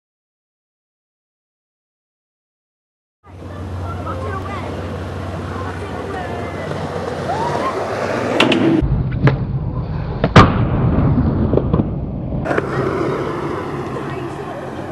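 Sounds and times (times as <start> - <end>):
skateboard wheels rolling: 3.4 - 14.9
skateboard clacks: 5.8 - 9.4, 11.5 - 13.1.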